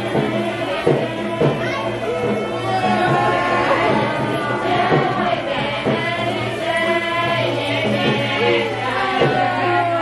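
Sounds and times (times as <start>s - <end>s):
group singing: 0.0s - 10.0s
musical accompaniment: 0.0s - 10.0s.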